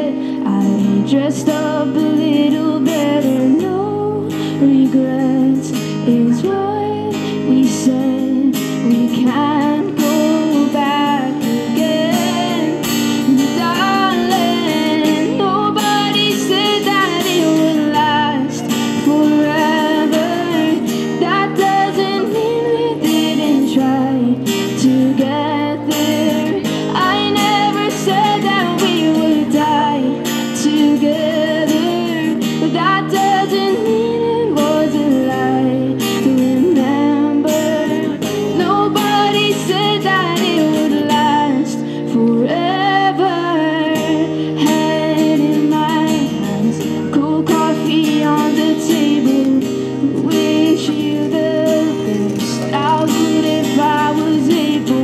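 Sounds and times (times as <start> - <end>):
acoustic guitar strumming: 0.0 - 55.0
woman singing a ballad: 0.0 - 55.0.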